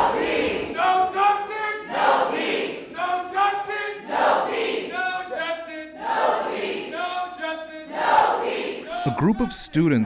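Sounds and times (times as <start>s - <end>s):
group singing a chant: 0.0s - 9.1s.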